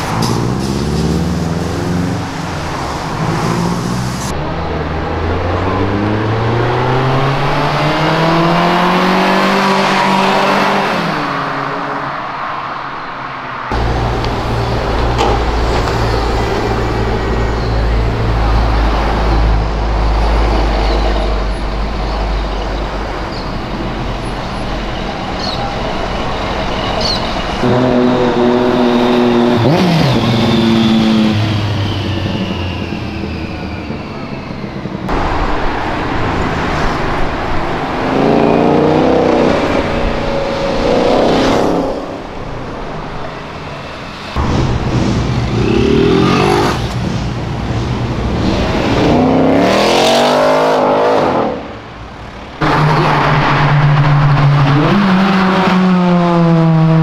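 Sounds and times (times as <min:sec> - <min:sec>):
cars passing with engines revving: 0:00.0 - 0:57.0.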